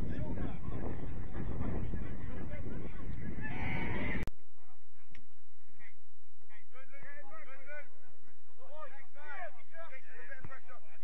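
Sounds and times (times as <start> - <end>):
wind buffeting microphone: 0.0 - 4.3.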